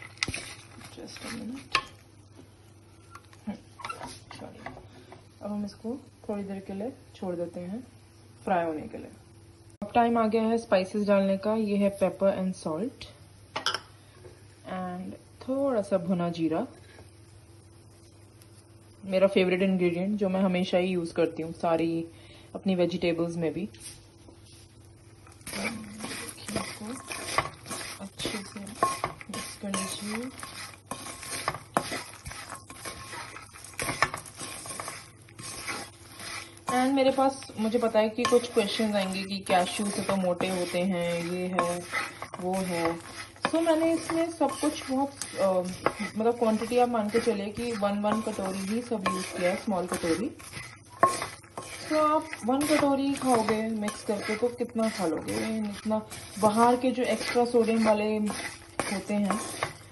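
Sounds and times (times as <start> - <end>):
spatula scraping a pan: 0.0 - 2.0, 25.2 - 59.9
low steady background noise: 0.0 - 59.9.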